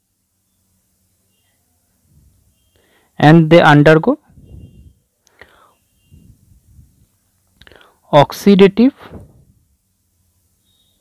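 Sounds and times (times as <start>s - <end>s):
faint breaths: 1.6s - 3.2s, 4.3s - 8.1s
person speaking: 3.2s - 4.8s, 8.1s - 9.4s.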